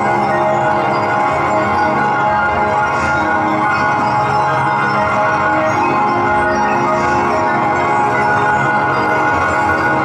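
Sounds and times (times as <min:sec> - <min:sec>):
electronic drone: 0:00.0 - 0:10.0.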